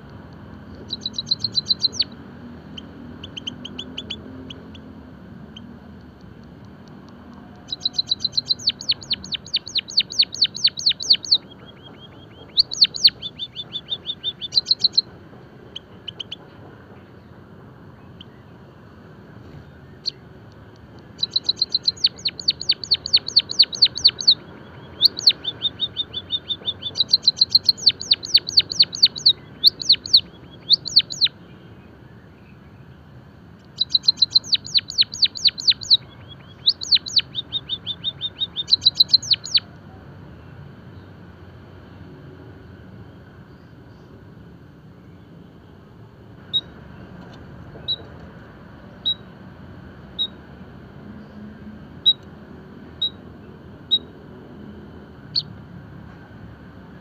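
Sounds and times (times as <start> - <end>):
bird singing high clicking notes: 0.0 - 2.2, 5.6 - 15.1, 20.0 - 31.3, 33.6 - 39.6.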